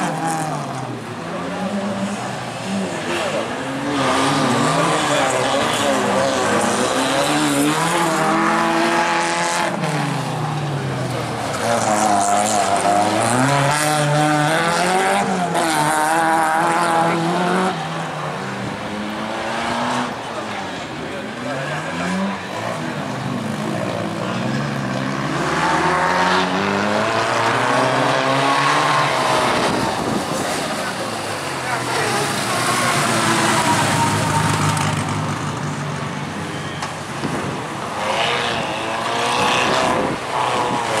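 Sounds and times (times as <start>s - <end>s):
race car engines revving: 0.0s - 41.0s.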